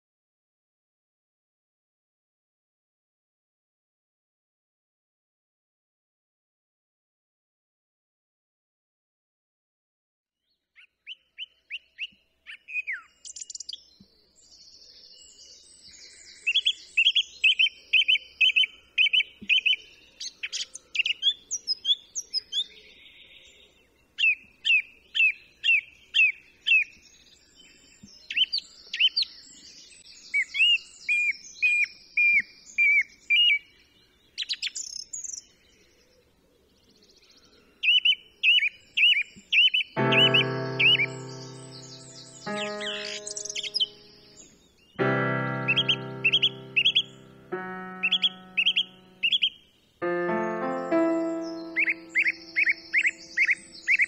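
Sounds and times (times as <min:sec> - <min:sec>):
songbirds singing: 0:10.4 - 0:54.0
high twittering: 0:40.0 - 0:44.1, 0:45.0 - 0:54.0.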